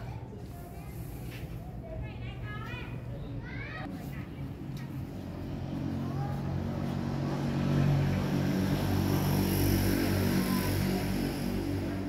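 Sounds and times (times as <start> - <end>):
steady engine drone: 5.0 - 12.0.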